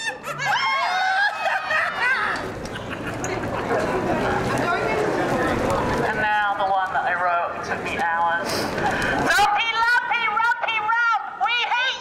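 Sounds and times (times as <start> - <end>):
person laughing in high voice: 0.0 - 3.5.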